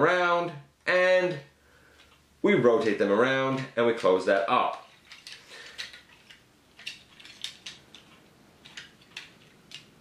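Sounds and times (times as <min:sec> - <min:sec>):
plastic toy parts clicking: 0:03.6 - 0:10.0.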